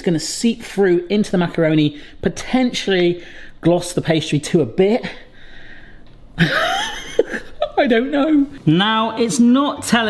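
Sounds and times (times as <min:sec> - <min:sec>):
man laughing wheezily: 0:06.4 - 0:07.6.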